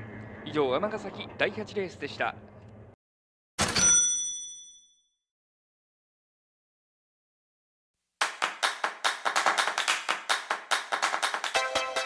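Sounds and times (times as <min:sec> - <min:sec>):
bell-like ding: 0:03.6 - 0:05.2.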